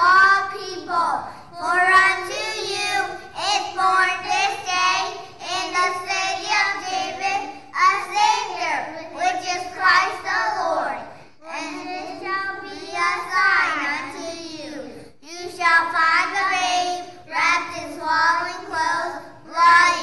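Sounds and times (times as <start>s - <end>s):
young children singing: 0.0s - 20.0s.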